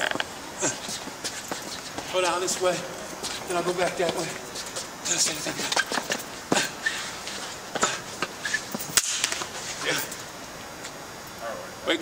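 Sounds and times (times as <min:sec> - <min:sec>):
boots scuffing on concrete: 0:00.0 - 0:09.9.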